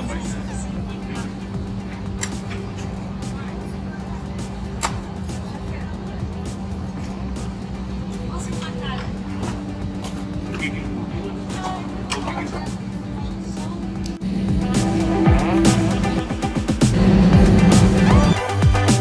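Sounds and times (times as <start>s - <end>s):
steady low hum: 0.0s - 18.7s
music: 0.0s - 19.0s.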